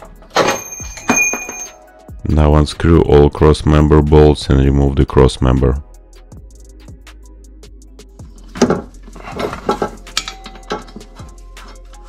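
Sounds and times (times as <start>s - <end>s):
background music: 0.0s - 12.0s
socket wrench clinking and rattling: 9.4s - 11.2s.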